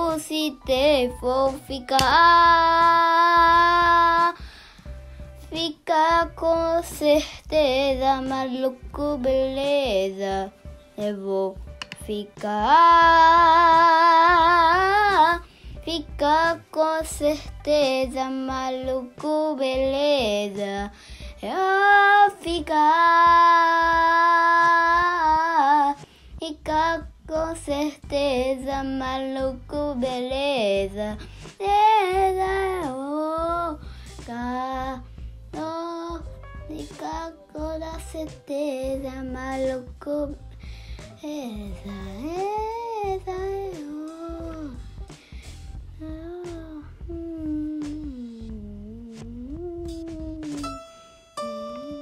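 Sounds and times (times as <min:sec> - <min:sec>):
person singing in a high voice: 0:41.2 - 0:44.8, 0:46.0 - 0:50.8, 0:51.4 - 0:52.0
low rumble: 0:44.3 - 0:50.4
person singing a long note: 0:51.4 - 0:52.0.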